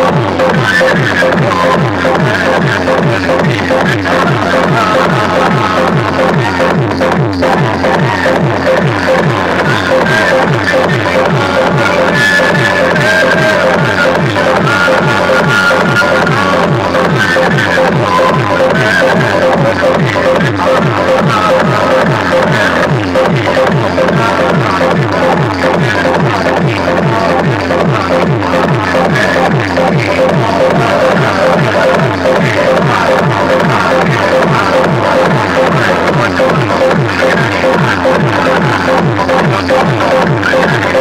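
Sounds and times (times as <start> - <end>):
dance music through loudspeakers: 0.0 - 41.0.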